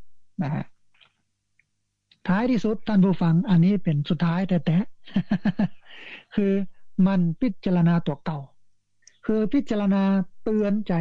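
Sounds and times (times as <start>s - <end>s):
man speaking: 0.4s - 0.7s, 2.2s - 8.5s, 9.2s - 11.0s.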